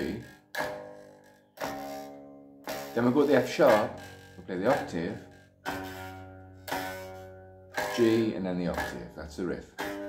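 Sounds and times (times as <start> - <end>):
electric bass guitar plucked notes: 0.0 - 10.0.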